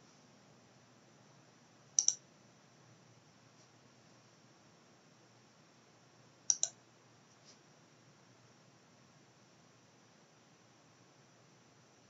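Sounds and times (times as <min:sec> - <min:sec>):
computer mouse button clicks: 0:02.0 - 0:02.2, 0:06.5 - 0:06.8.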